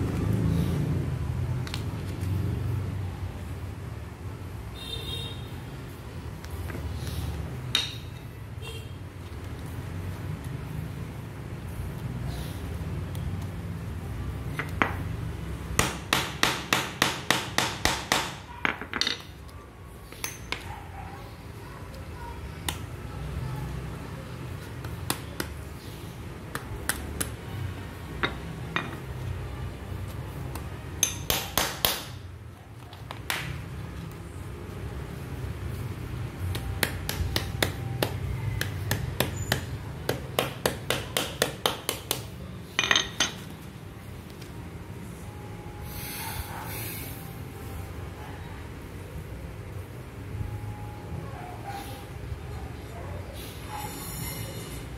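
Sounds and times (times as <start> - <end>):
hammer striking hole punch: 15.8 - 18.4
hammer striking metal: 31.0 - 32.2.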